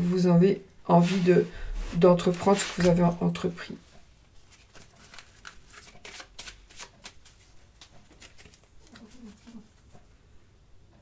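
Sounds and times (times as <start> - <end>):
cards being shuffled: 1.9 - 3.4, 4.4 - 9.6.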